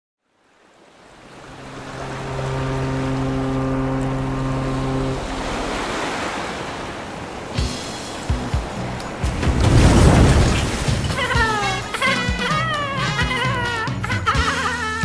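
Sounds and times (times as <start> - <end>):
rough sea waves washing: 0.3 - 14.2
low sustained tone: 1.3 - 5.8.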